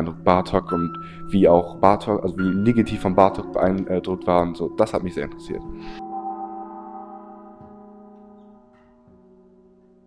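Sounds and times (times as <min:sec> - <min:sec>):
small gong struck with mallet: 0:06.0 - 0:09.0.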